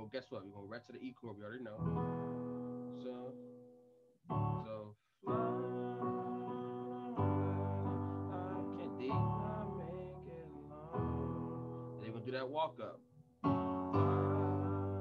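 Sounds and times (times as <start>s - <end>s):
electronic keyboard chords: 1.8s - 15.0s.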